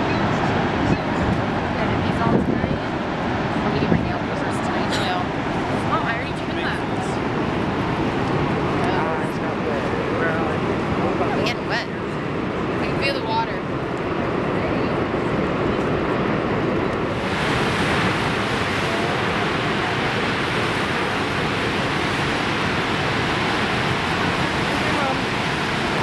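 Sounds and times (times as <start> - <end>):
whitewater rushing: 0.0 - 26.0.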